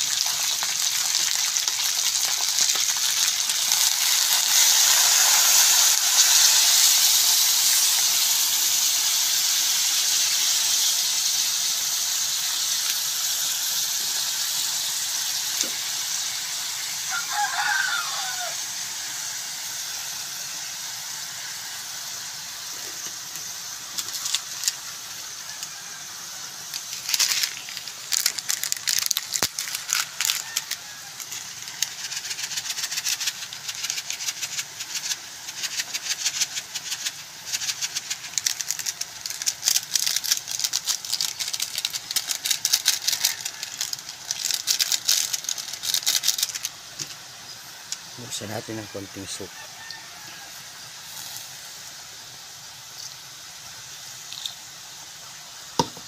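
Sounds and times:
crackling and popping: 0.0 - 19.2, 22.0 - 48.8, 52.7 - 56.0
sauce sizzling in a wok: 0.0 - 56.0.

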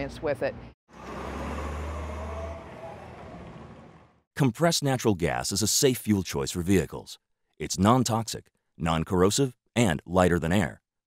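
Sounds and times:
heavy truck rumble: 0.9 - 4.2.

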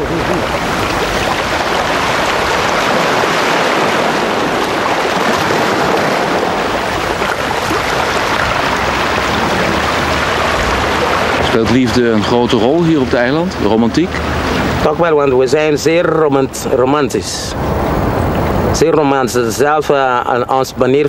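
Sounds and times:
waves washing on beach: 0.0 - 21.0.

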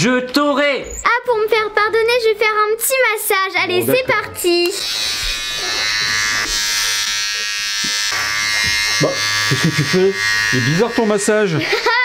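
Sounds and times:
electric hair clippers buzzing: 4.4 - 12.0.

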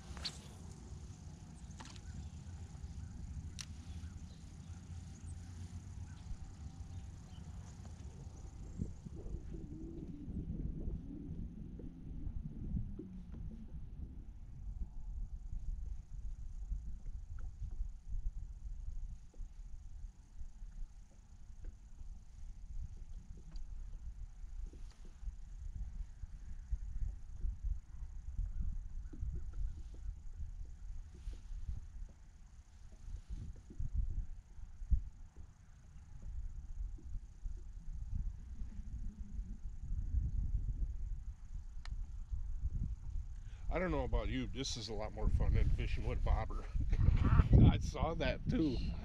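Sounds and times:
faint clicks: 0.0 - 9.2, 21.1 - 25.3, 41.8 - 42.4
wind buffeting microphone: 0.0 - 21.0, 21.6 - 49.0.

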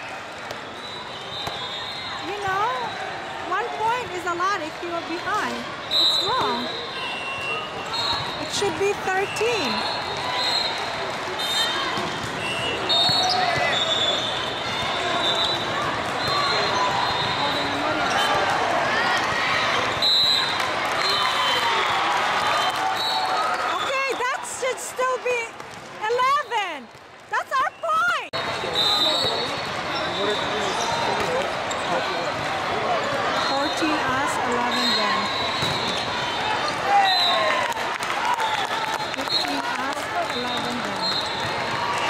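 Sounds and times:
crowd talking: 0.0 - 42.0
volleyballs hit and bouncing: 1.4 - 1.7, 7.4 - 20.8, 25.5 - 27.4, 35.5 - 37.0, 37.7 - 42.0.

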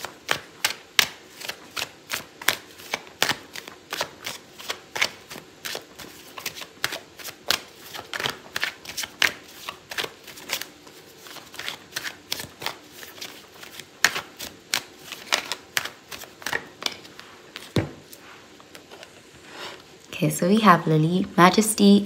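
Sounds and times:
cards being shuffled: 0.0 - 19.9.

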